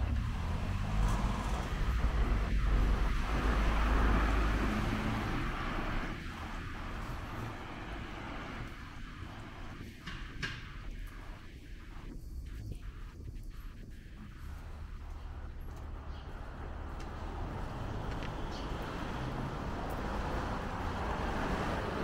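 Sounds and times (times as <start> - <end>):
vehicle passing on wet street: 0.0 - 9.9, 14.6 - 22.0.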